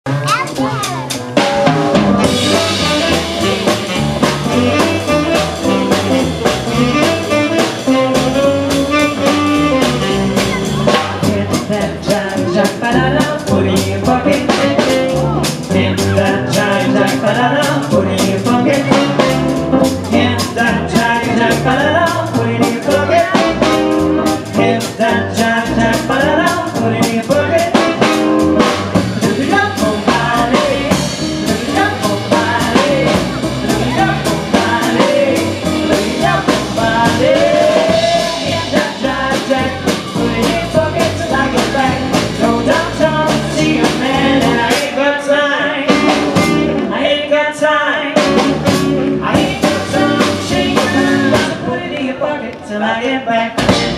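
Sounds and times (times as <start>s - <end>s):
swing jazz band playing: 0.1s - 47.2s, 48.1s - 52.2s, 53.5s - 53.9s
woman singing: 29.2s - 46.1s, 49.2s - 53.6s.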